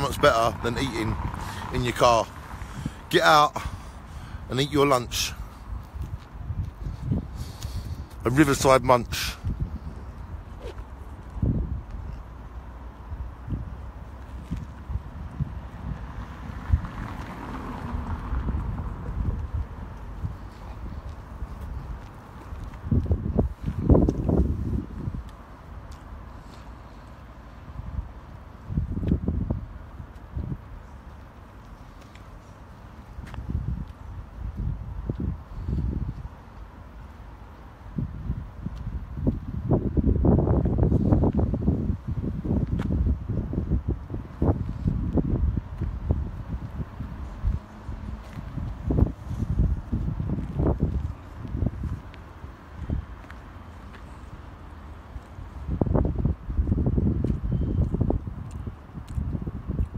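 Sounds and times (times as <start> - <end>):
wind buffeting microphone: 0.0 - 36.7, 37.8 - 59.9.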